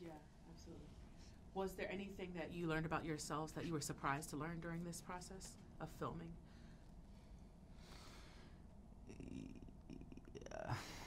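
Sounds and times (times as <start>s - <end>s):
man humming while thinking: 9.0s - 11.0s.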